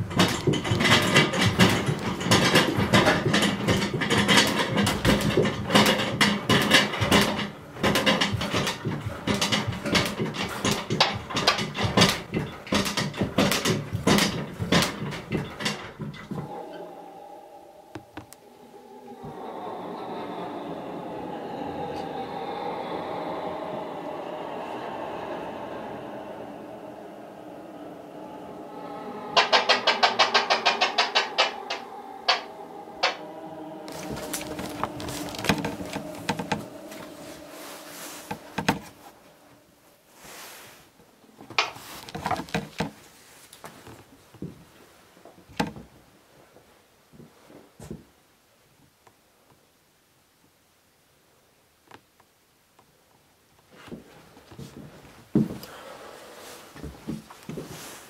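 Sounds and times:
loud knocking and clattering: 0.0s - 16.6s, 28.8s - 37.5s, 38.2s - 39.0s
steady drone with held tones: 16.3s - 40.1s.

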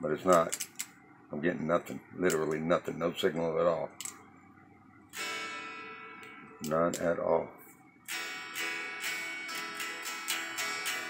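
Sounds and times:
unamplified guitar chord strummed: 5.1s - 7.5s, 8.1s - 11.0s.

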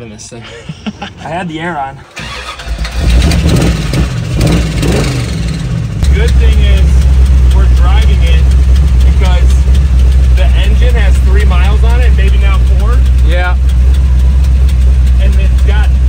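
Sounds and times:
car engine idling: 0.0s - 16.0s.

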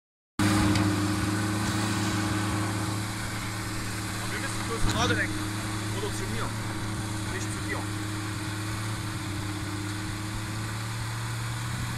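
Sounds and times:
truck engine running at low revs: 0.4s - 11.9s.

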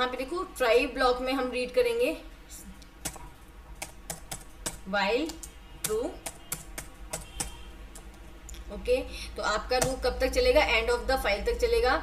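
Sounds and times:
computer keyboard typing: 3.0s - 8.2s.

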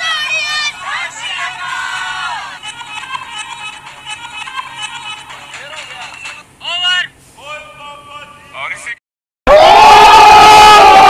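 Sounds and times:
several voices shouting: 9.5s - 11.0s.

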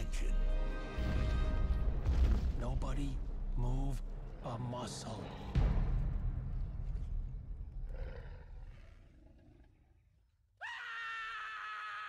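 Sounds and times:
deep dinosaur roar: 7.8s - 10.0s
high held scream: 10.6s - 12.0s.

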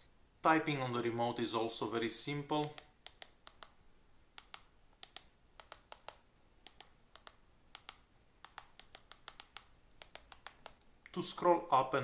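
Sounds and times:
clicking of keyboard keys: 4.4s - 10.8s.

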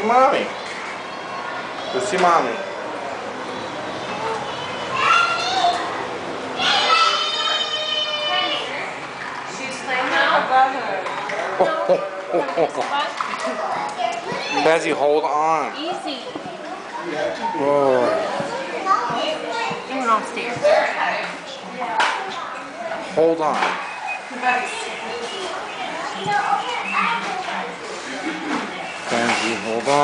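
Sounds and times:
room noise: 0.0s - 30.0s
child calling: 4.2s - 6.0s, 6.6s - 8.7s.

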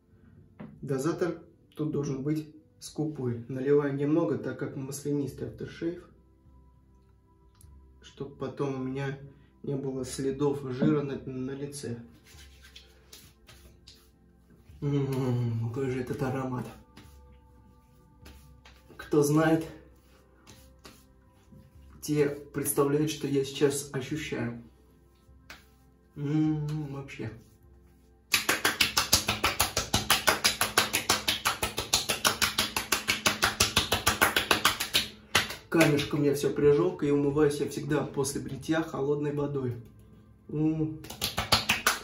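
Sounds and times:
palms rubbing on skin: 12.1s - 15.3s, 16.0s - 36.2s, 41.0s - 42.0s.

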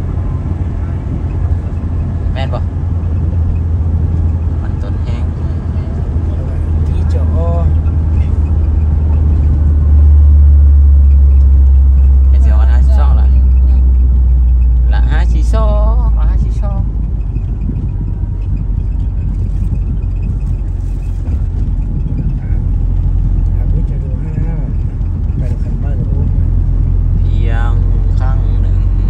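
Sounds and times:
car engine: 0.0s - 29.0s
tyres rumbling on concrete road: 0.0s - 29.0s.

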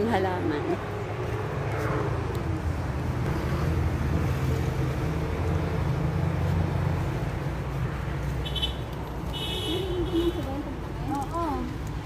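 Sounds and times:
road noise: 0.0s - 12.0s
car engine rumble: 0.4s - 12.0s.

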